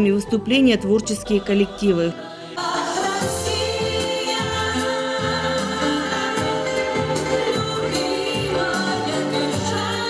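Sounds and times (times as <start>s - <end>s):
women singing together: 1.0s - 10.0s.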